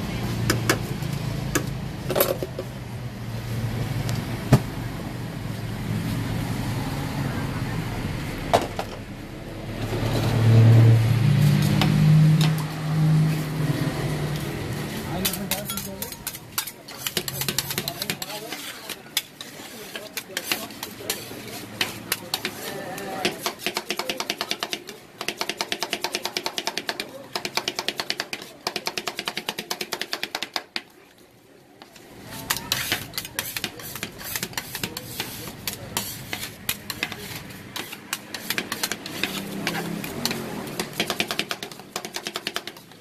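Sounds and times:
metal spatulas scraping steel pan: 14.8 - 25.5, 32.2 - 43.0.

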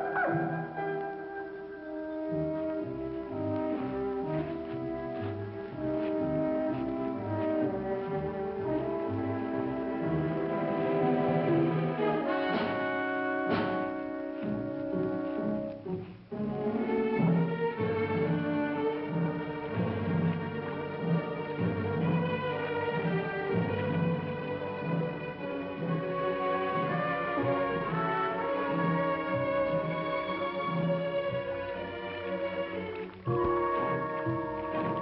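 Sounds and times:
french horn: 0.0 - 35.0
strings: 0.0 - 35.0
sustained brass: 11.0 - 15.7.

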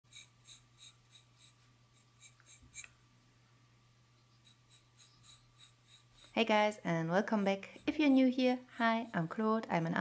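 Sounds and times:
pencil strokes on paper: 4.3 - 6.6.

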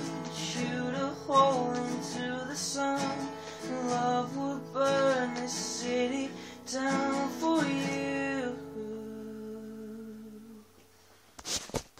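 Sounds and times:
acoustic guitar chord ringing: 0.0 - 10.6.

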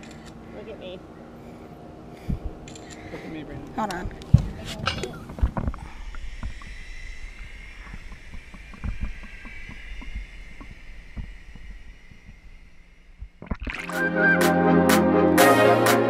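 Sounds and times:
underwater rumble with hiss: 4.4 - 13.6.

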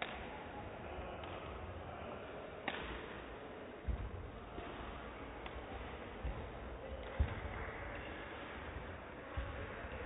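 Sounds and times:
rackets hitting shuttlecock: 0.0 - 0.4, 1.2 - 1.6, 2.6 - 10.0.

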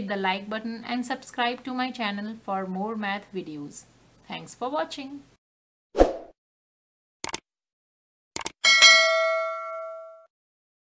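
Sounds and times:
notification bell chime: 8.7 - 10.3.

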